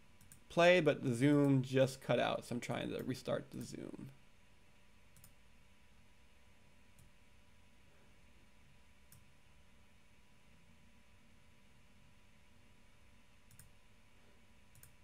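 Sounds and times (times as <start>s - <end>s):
faint clicks: 0.2s - 0.5s, 5.1s - 5.4s, 13.5s - 13.8s, 14.7s - 15.0s.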